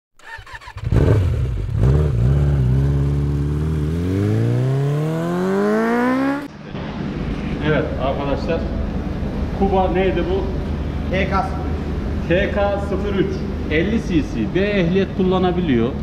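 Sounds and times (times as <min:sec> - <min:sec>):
motorcycle engine revving: 0:00.2 - 0:06.6.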